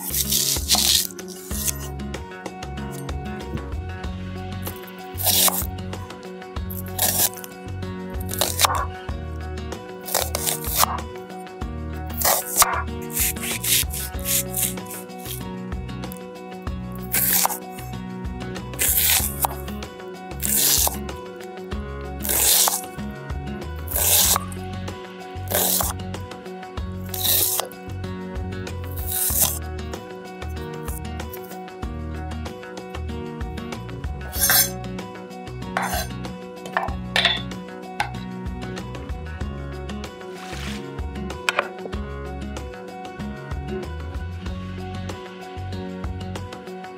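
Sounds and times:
knife cutting onion on wooden board: 0.0s - 2.0s, 4.7s - 5.8s, 6.7s - 7.6s, 8.2s - 9.0s, 10.0s - 11.1s, 12.1s - 15.4s, 17.0s - 17.9s, 18.8s - 21.2s, 22.2s - 23.1s, 23.7s - 24.7s, 25.4s - 26.0s, 27.0s - 27.8s, 28.8s - 29.6s, 30.8s - 31.6s, 34.2s - 34.8s, 35.7s - 38.2s, 40.3s - 41.9s
background music: 0.0s - 46.9s.

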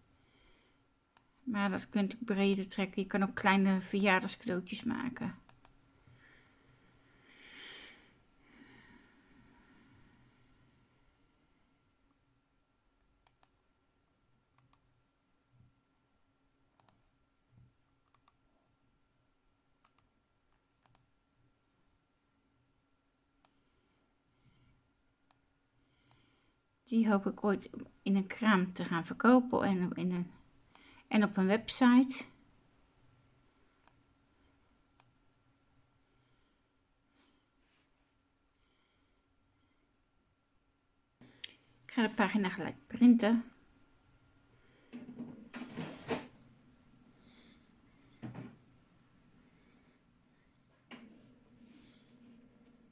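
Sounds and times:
faint steady hum: 0.0s - 52.9s
woman speaking: 1.5s - 5.4s, 26.9s - 30.4s, 31.1s - 32.4s, 41.9s - 43.5s
computer mouse clicks: 5.4s - 5.8s, 13.2s - 13.7s, 14.5s - 14.9s, 16.7s - 17.1s, 18.0s - 18.4s, 19.8s - 21.1s, 23.4s - 23.6s, 30.1s - 30.9s, 33.8s - 34.0s, 35.0s - 35.2s.

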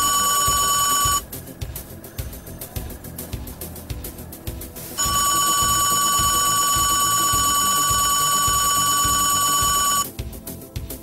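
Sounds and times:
high electronic tone: 0.0s - 3.9s, 4.9s - 10.1s
film music with low beat: 0.0s - 11.0s.

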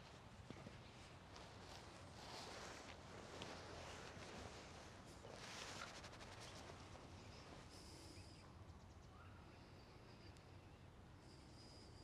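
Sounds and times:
faint low background noise: 0.0s - 12.0s.

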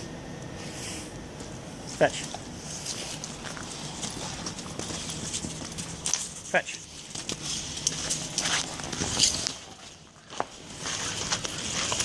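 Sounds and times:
footsteps crunching on icy snow: 2.0s - 12.0s.

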